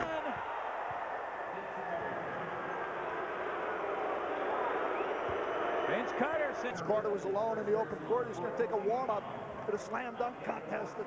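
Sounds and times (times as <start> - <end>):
arena crowd cheering: 0.0 - 7.6.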